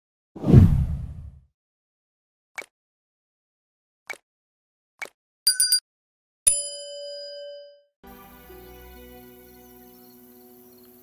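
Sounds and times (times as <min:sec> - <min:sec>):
swoosh transition effect: 0:00.4 - 0:01.3.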